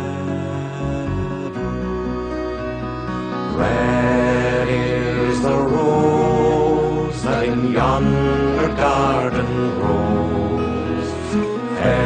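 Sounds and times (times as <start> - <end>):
man singing a slow folk ballad: 0.0 - 1.9.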